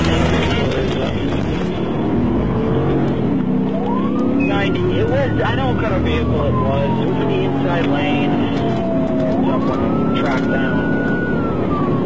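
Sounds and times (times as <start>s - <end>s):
car engine accelerating: 0.0s - 12.0s.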